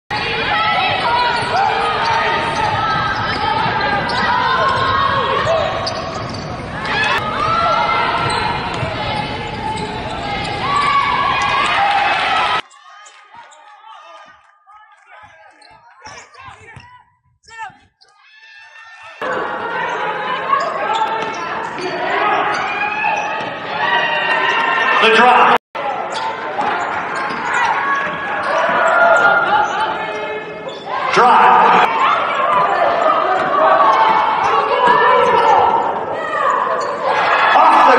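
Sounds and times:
basketball bouncing on court: 0:00.5 - 0:11.8
indistinct voices: 0:13.8 - 0:37.9.

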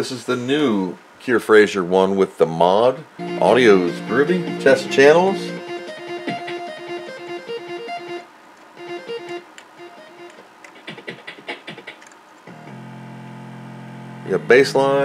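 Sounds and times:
low bass line: 0:03.2 - 0:05.7
repeating synth melody: 0:03.2 - 0:08.2, 0:08.8 - 0:10.4.

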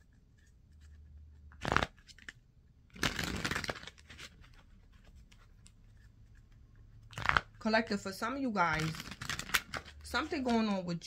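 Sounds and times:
cards being shuffled: 0:00.0 - 0:07.6, 0:08.6 - 0:10.8.

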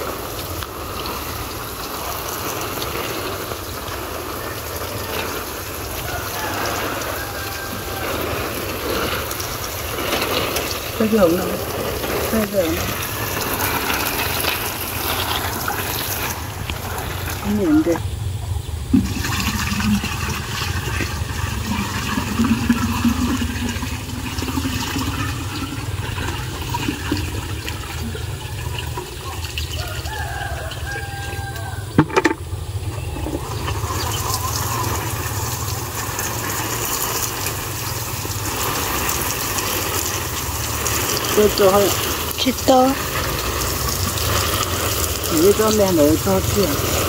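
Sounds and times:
water pouring into watering can: 0:00.0 - 0:18.0, 0:18.7 - 0:47.0
water sprinkling on leaves: 0:00.0 - 0:47.0
steady low rumble: 0:14.6 - 0:22.7.

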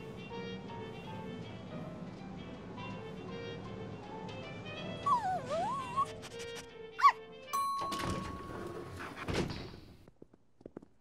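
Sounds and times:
background music: 0:00.0 - 0:09.1
small dog whining: 0:04.9 - 0:06.4, 0:07.0 - 0:07.3
dog yip: 0:05.0 - 0:06.2, 0:07.0 - 0:07.2
lift chime ringing: 0:07.6 - 0:09.1
lift doors opening thunk: 0:07.8 - 0:09.8.

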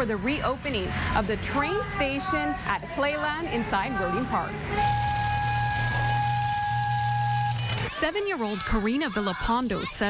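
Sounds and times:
locomotive engine running: 0:00.0 - 0:07.9
train whistle long note: 0:04.6 - 0:07.8.

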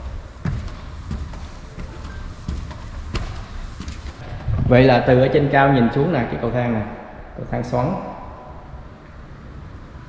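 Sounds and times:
low steady rumbling: 0:04.2 - 0:10.0.

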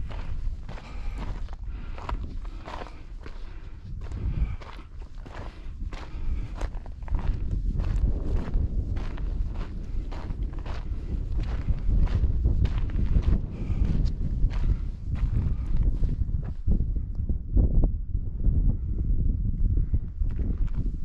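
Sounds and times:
footsteps on a trail: 0:00.0 - 0:16.6
low rumble: 0:00.0 - 0:21.0.

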